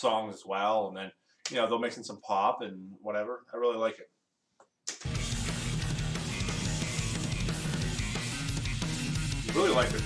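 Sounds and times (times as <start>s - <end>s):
bass guitar solo: 5.1s - 10.0s
hard rock song: 5.1s - 10.0s.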